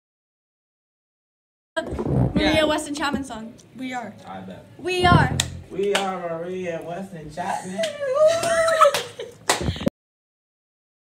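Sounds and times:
boy laughing: 0:07.4 - 0:09.5.

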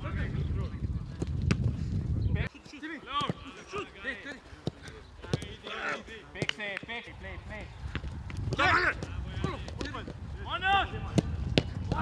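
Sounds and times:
wind rumble on microphone: 0:00.0 - 0:02.5, 0:07.1 - 0:12.0
boot kicking football: 0:01.1 - 0:01.8, 0:11.0 - 0:12.0
players shouting: 0:02.7 - 0:07.1, 0:08.5 - 0:12.0.

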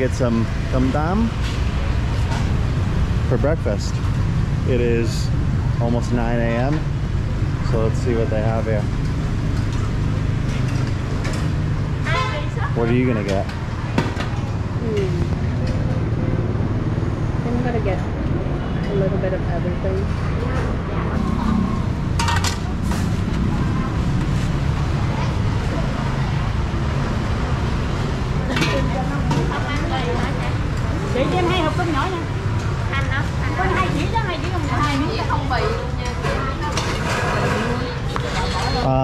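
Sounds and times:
people talking: 0:00.0 - 0:01.4, 0:03.3 - 0:04.0, 0:04.7 - 0:06.8, 0:07.7 - 0:08.9, 0:14.8 - 0:15.3, 0:17.4 - 0:21.8, 0:28.5 - 0:39.0
motorbike rumble: 0:00.0 - 0:39.0
street traffic: 0:00.0 - 0:39.0.

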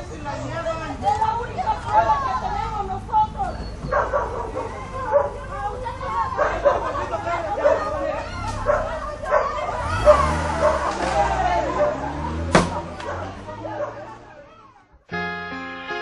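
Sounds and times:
crowd voices: 0:00.0 - 0:16.0
dog barking and yelping: 0:03.8 - 0:05.5, 0:06.1 - 0:14.2
car engine running: 0:05.4 - 0:14.6.

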